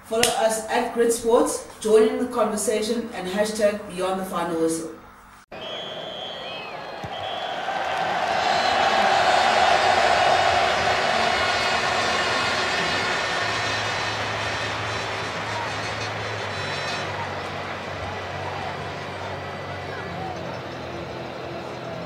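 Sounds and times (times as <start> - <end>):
rushing swell: 8.5 - 19.7
low hum: 9.9 - 22.0.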